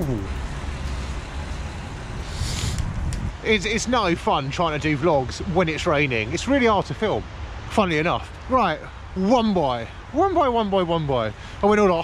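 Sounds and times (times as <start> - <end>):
wind buffeting microphone: 0.0 - 4.2.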